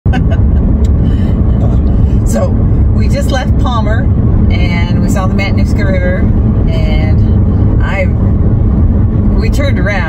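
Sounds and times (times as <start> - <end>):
woman laughing: 0.1 - 0.9
road rumble inside car: 0.1 - 10.0.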